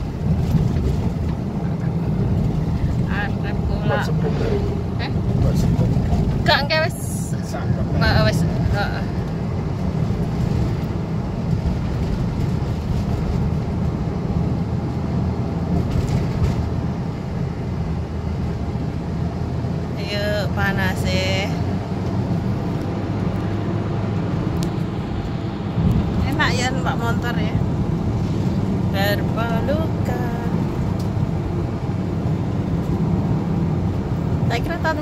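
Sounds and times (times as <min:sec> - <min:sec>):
car road and engine noise: 0:00.0 - 0:35.0
voice fragments: 0:03.1 - 0:05.6.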